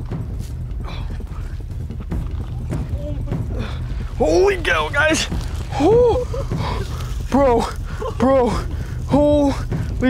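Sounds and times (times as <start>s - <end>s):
steady low rumble: 0.0s - 10.0s
water splashing: 2.1s - 10.0s.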